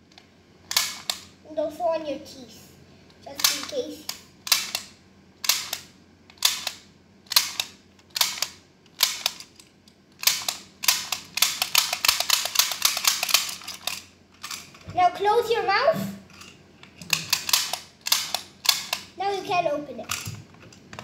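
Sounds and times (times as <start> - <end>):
plastic toy tool clicking: 3.4 - 9.6, 10.2 - 14.7, 16.4 - 19.1.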